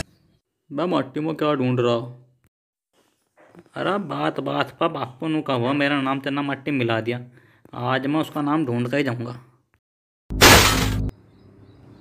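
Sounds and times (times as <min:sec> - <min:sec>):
loud crash of something breaking: 0:10.3 - 0:11.1.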